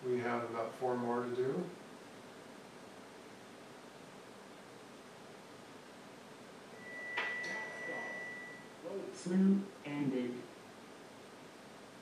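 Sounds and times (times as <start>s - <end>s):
steady high-pitched tone: 6.7s - 9.3s.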